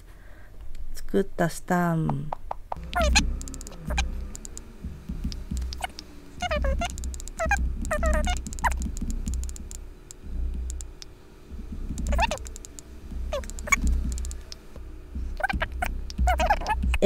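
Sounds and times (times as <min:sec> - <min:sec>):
light ticks: 0:02.8 - 0:06.1, 0:06.8 - 0:11.1, 0:11.9 - 0:14.8
low hum: 0:02.8 - 0:17.0.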